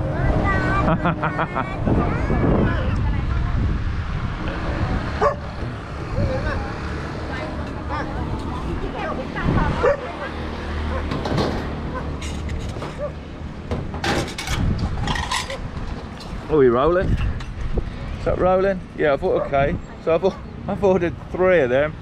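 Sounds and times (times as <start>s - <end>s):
passing traffic: 0.0s - 22.0s
dog barking: 5.2s - 5.5s, 9.8s - 10.1s.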